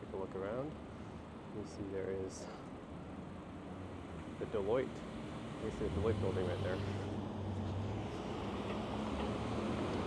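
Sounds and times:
street noise: 0.0 - 10.0
vehicle engines humming: 2.3 - 10.0.

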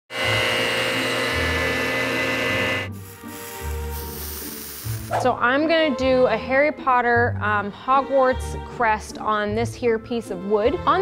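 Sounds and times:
woodworking machine whining: 0.1 - 3.6
background music with bass: 1.2 - 11.0.

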